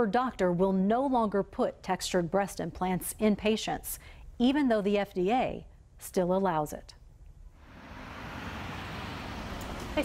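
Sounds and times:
car driving: 7.6 - 10.0.

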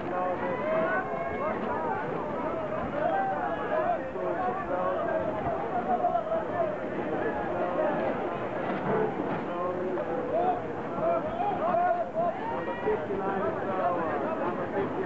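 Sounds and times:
people talking: 0.0 - 15.0
steady background noise: 0.0 - 15.0.

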